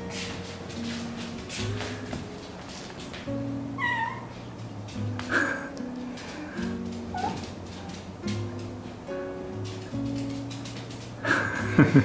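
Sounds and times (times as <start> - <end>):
acoustic guitar music: 0.0 - 12.0
cat meowing: 3.8 - 4.3.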